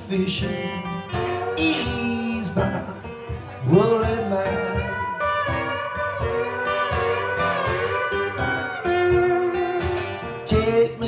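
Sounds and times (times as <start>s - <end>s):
acoustic blues guitars: 0.0s - 11.0s.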